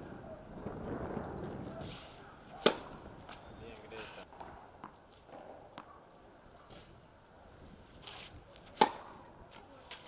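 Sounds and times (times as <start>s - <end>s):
tennis racket hitting ball: 1.8s - 3.4s, 8.0s - 9.2s.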